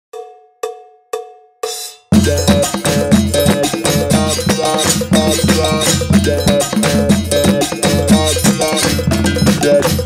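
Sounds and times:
percussion music: 0.1 - 10.0
metal bell struck: 2.2 - 10.0.

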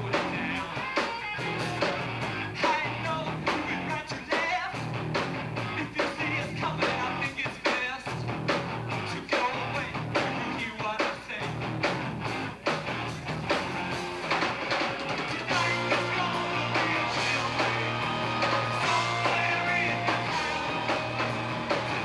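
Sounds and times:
man singing: 0.0 - 1.1, 2.5 - 4.8, 5.6 - 8.2, 9.0 - 11.6, 15.3 - 21.3
distorted electric guitars: 0.0 - 22.0
drum kit: 0.0 - 22.0.

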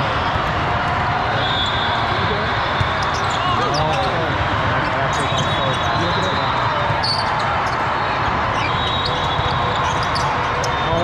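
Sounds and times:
crowd of voices: 0.0 - 11.0
sneakers squeaking on court: 3.0 - 4.0, 8.5 - 10.8.

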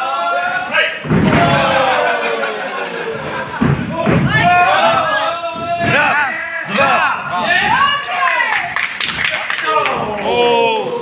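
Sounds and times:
wrestlers thudding on mat: 1.0 - 2.4, 3.1 - 6.2.

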